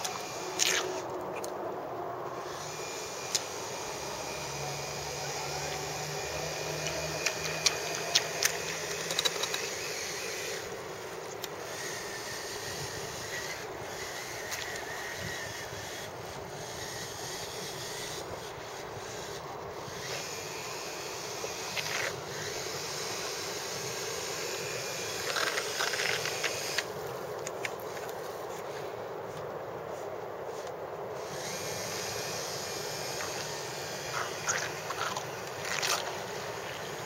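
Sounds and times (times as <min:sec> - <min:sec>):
electric motors droning: 0:00.0 - 0:37.0.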